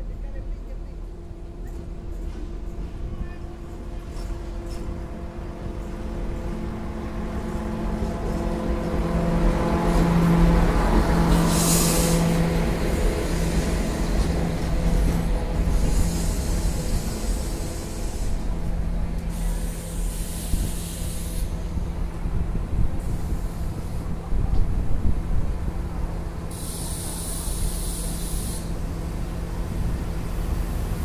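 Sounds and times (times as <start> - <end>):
train engine hum: 0.0 - 31.0
brake air hiss: 11.3 - 12.5, 15.7 - 21.8, 26.4 - 28.9.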